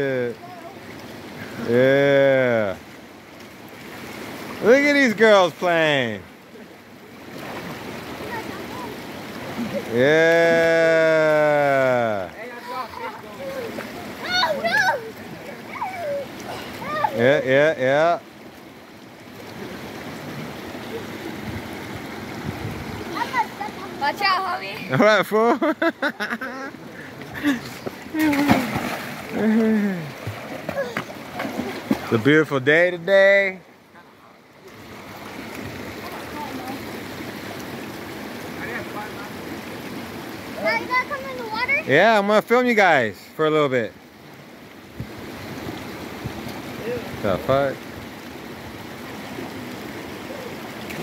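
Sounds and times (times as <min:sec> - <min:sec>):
flowing water rushing: 0:00.0 - 0:51.0.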